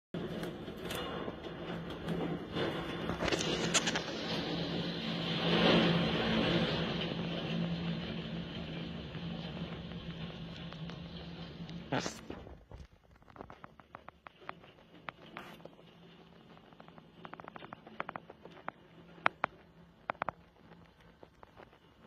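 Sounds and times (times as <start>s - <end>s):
roofing and debris clattering: 0.2s - 22.0s
storm wind gusting: 0.6s - 13.2s.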